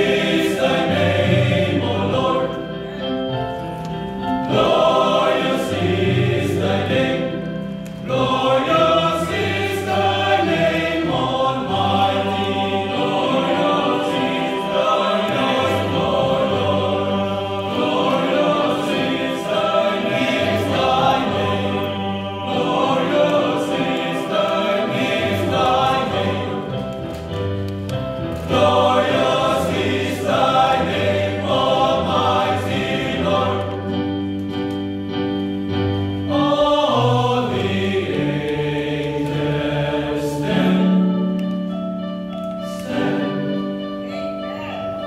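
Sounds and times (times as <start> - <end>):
male choir singing in harmony: 0.0 - 45.0.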